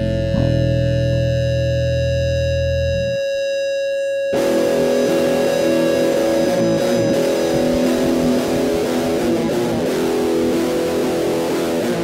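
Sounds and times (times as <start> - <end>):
bass guitar: 0.0 - 3.3, 4.4 - 12.0
electric guitar chords: 0.0 - 12.0.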